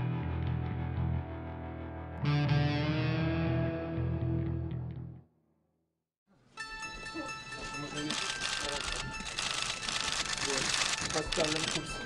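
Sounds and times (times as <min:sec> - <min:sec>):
men talking: 0:07.2 - 0:09.1, 0:10.4 - 0:12.0
camera shutters clicking rapidly: 0:08.1 - 0:11.9.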